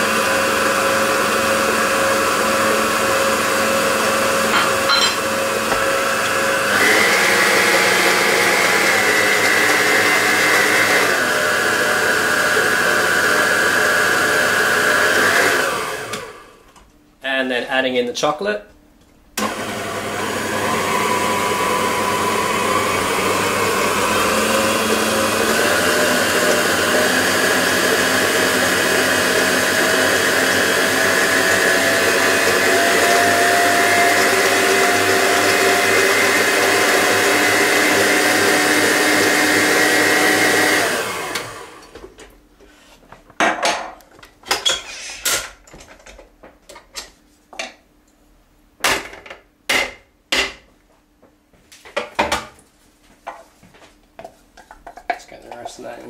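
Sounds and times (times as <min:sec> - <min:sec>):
electric mixer whining: 0:00.0 - 0:16.6, 0:19.4 - 0:42.0.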